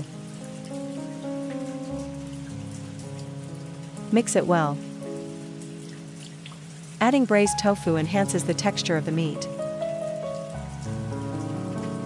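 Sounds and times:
rain-like hiss: 0.0s - 12.0s
soft music of sustained chords: 0.0s - 12.0s.

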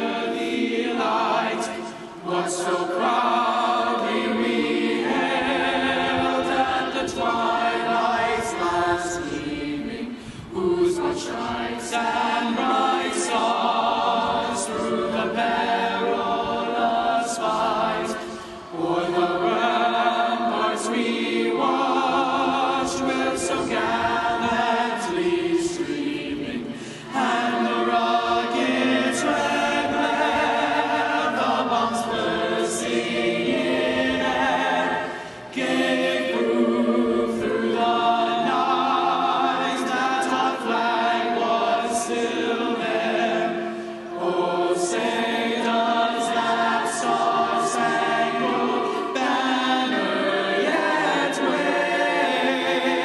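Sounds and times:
choir singing a cappella: 0.0s - 53.0s.

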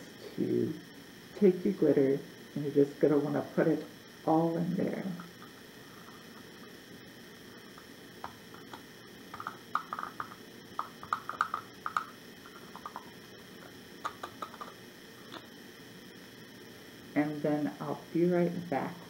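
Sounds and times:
paper tapping against glass jar: 8.2s - 12.1s.

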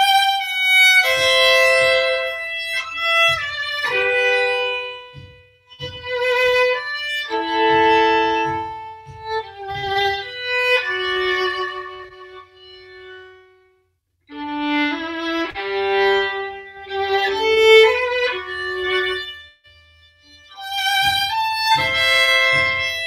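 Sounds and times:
solo violin playing slow melody: 0.0s - 23.0s.

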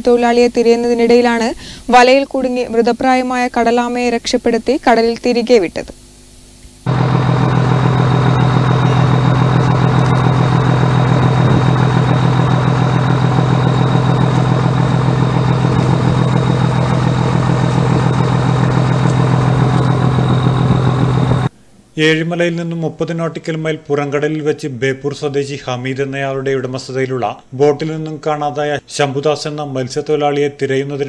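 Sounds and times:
boat engine running: 6.9s - 21.5s.

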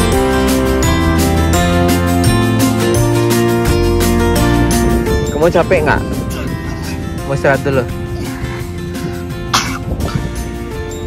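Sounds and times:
background music sustained tones: 0.0s - 11.0s
person coughing: 9.5s - 10.3s.

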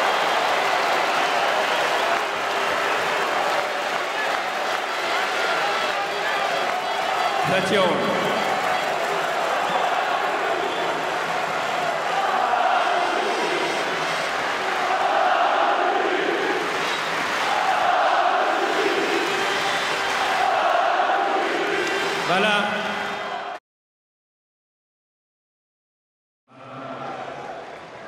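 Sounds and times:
crowd noise: 0.0s - 23.6s, 26.5s - 28.0s
crowd chanting in unison: 9.4s - 23.6s.

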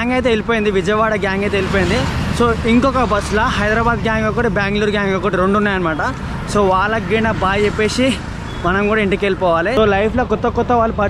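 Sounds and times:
man talking: 0.0s - 11.0s
street traffic rumble: 0.0s - 11.0s.

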